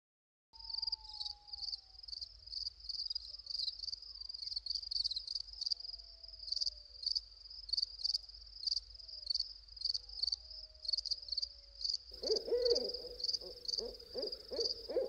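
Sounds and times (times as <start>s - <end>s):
crickets chirping: 0.6s - 15.0s.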